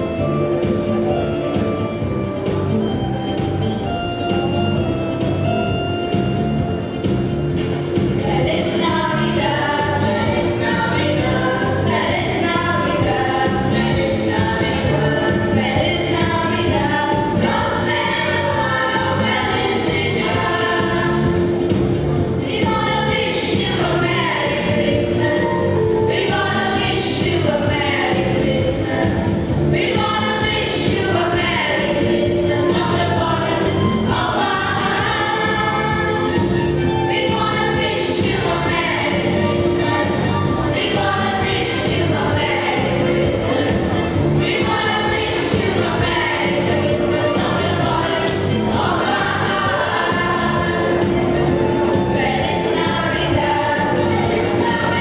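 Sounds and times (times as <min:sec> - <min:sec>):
instrumental accompaniment: 0:00.0 - 0:55.0
choir singing: 0:08.2 - 0:55.0.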